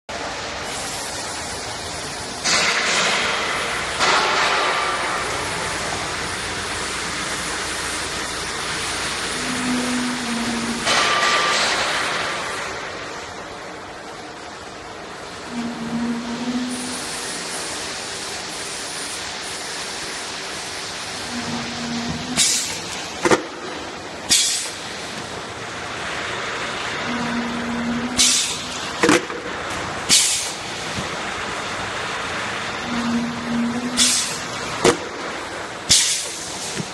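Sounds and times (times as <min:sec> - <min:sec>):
loud hiss: 0:00.3 - 0:13.2, 0:15.2 - 0:36.9
sharp hisses of air: 0:00.5 - 0:02.4, 0:16.5 - 0:21.4, 0:22.4 - 0:23.0, 0:24.3 - 0:25.2, 0:28.2 - 0:28.9, 0:30.0 - 0:31.0, 0:33.9 - 0:34.6, 0:35.8 - 0:36.8
machine mechanical din: 0:02.4 - 0:13.3, 0:15.2 - 0:18.0, 0:20.6 - 0:36.9
low steady hum: 0:09.1 - 0:17.4
cup filling machine clattering: 0:27.0 - 0:31.3.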